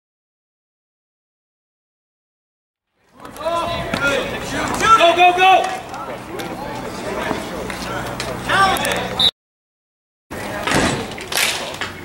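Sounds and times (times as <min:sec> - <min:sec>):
spectators talking indistinctly: 0:03.0 - 0:09.3, 0:10.3 - 0:12.0.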